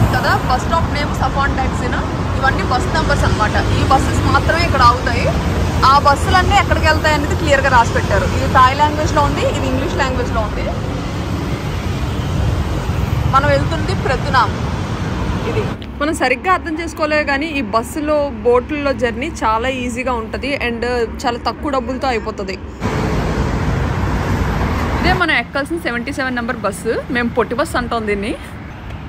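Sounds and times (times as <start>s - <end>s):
bus engine running: 0.0s - 16.0s, 21.9s - 28.4s
road traffic rumble: 0.0s - 29.0s.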